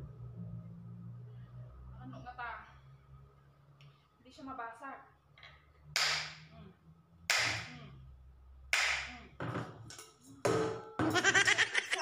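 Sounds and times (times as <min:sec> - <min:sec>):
hammer striking glass bottle: 0:10.4 - 0:11.5.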